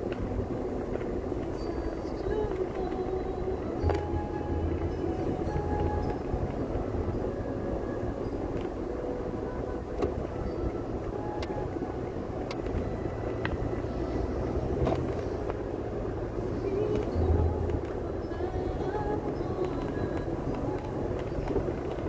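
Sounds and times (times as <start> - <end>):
car road and engine noise: 0.0 - 22.0.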